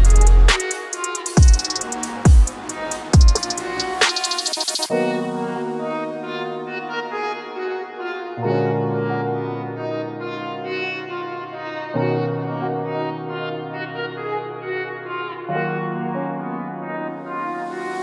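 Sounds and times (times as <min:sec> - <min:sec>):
music of long held chords: 0:00.0 - 0:18.0.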